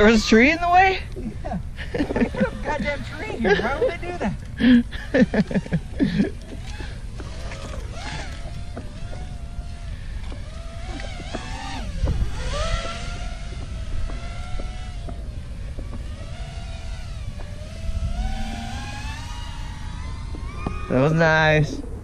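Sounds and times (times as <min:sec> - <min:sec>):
drone motors whining: 0:00.0 - 0:22.0
steady low rumble: 0:00.0 - 0:22.0.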